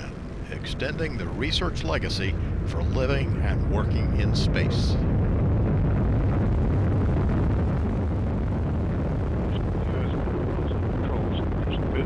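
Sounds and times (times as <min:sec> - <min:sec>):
rocket engine rumbling: 0:00.0 - 0:12.0.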